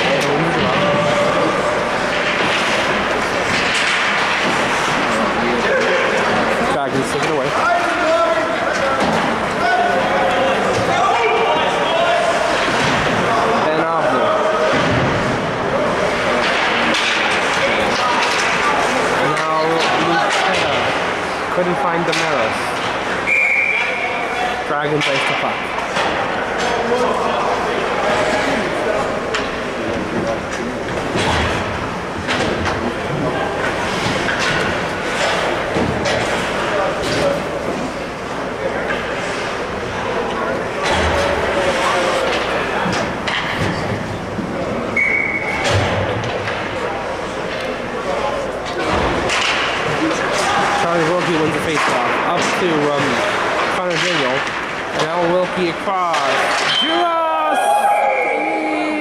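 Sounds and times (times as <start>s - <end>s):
pucks and sticks hitting boards: 0.0s - 57.1s
indistinct voices: 0.0s - 59.0s.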